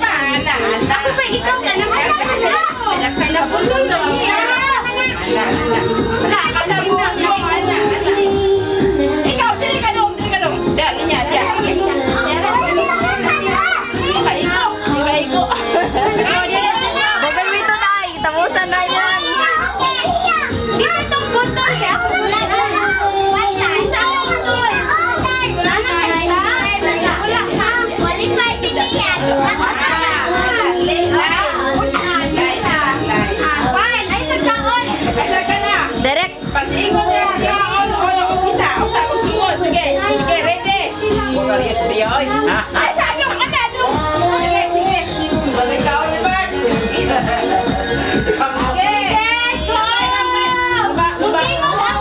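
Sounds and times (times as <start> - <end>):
young children chattering: 0.0 - 52.0.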